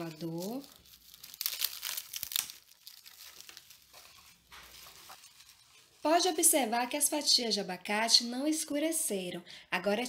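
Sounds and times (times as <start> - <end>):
plastic cling film crinkling: 0.0 - 6.5.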